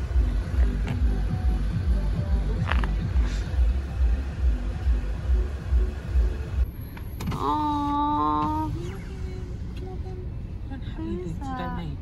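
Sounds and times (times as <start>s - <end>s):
road rumble inside car: 0.0s - 12.0s.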